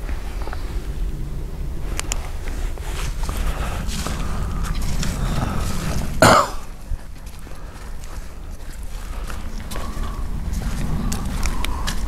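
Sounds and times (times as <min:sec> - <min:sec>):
footsteps on dirt road: 0:00.0 - 0:12.0
person coughing: 0:06.2 - 0:06.7.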